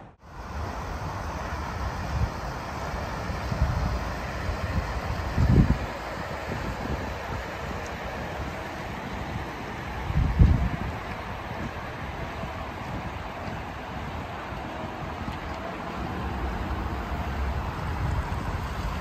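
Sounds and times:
steady outdoor hiss: 0.0s - 19.0s
wind buffeting microphone: 0.2s - 19.0s.

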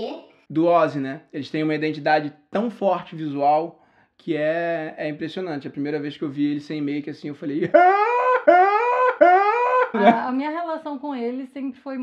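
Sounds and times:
man mock crying wails: 10.0s - 10.2s.

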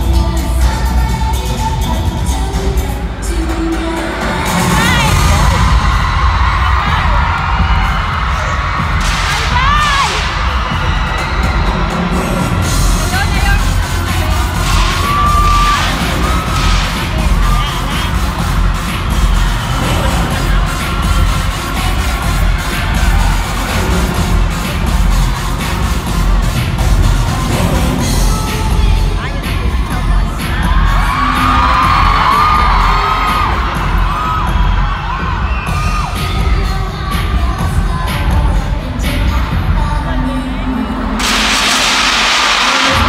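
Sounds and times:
dance-pop music with booming bass: 0.0s - 43.0s
crowd cheering: 4.3s - 27.9s, 30.4s - 36.8s, 41.0s - 43.0s.

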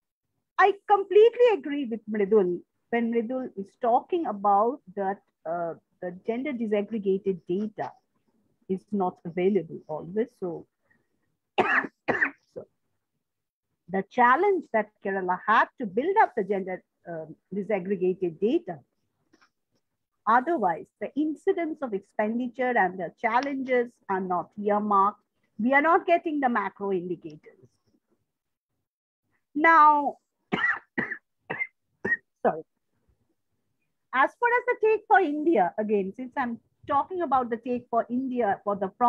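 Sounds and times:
woman speaking: 0.6s - 8.0s, 8.7s - 10.6s, 13.9s - 18.8s, 20.3s - 27.5s, 29.6s - 30.2s, 34.2s - 39.0s
woman coughing: 11.6s - 12.5s, 30.5s - 32.3s.

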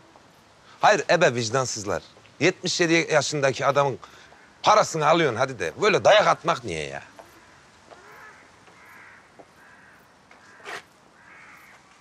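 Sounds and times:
faint bird calls: 4.0s - 4.6s, 7.1s - 12.0s.

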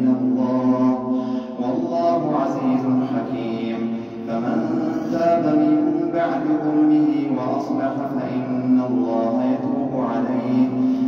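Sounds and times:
man chanting melodically: 0.0s - 11.0s.

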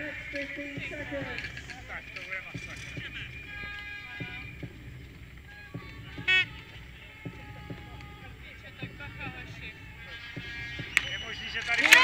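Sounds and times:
public-address voice: 0.0s - 4.6s, 5.8s - 12.0s
distant crowd voices: 0.0s - 12.0s
music: 0.0s - 12.0s.

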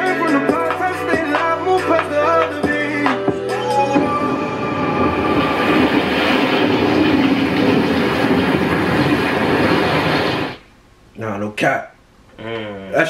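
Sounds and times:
song music: 0.0s - 7.1s
train-like rumbling and clattering: 4.0s - 10.6s.

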